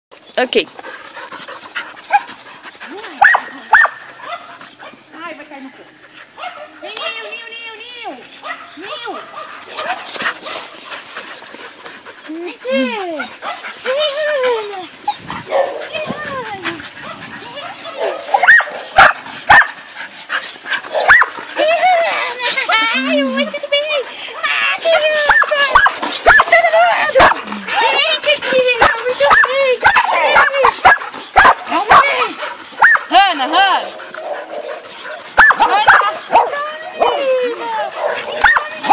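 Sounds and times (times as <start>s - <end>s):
dogs barking: 2.9s - 5.1s, 6.3s - 7.4s, 8.4s - 10.8s, 13.1s - 16.3s, 17.0s - 19.9s, 20.7s - 21.8s, 24.9s - 38.9s.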